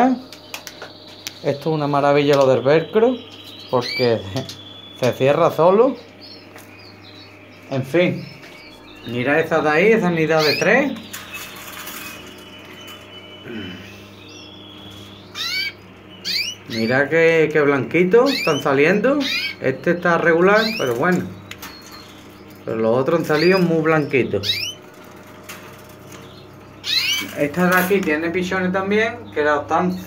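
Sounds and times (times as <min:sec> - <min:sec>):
faint bird chirps: 0:00.0 - 0:25.0, 0:26.1 - 0:27.9
low steady hum: 0:00.0 - 0:30.0.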